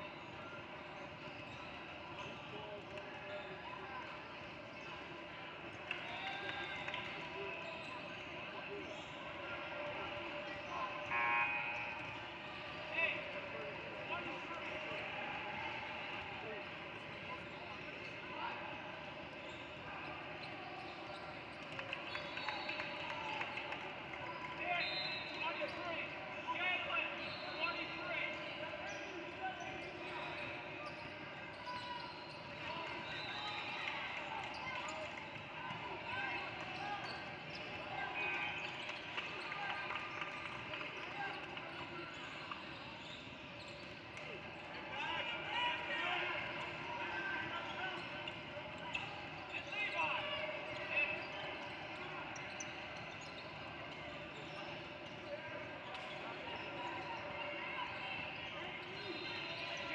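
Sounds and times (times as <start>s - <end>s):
chatter and shouts: 0.0s - 59.9s.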